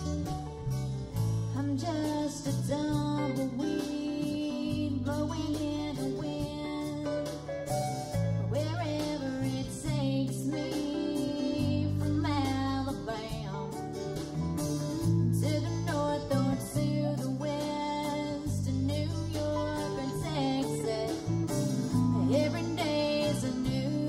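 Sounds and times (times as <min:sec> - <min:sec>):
country band playing live: 0:00.0 - 0:24.0.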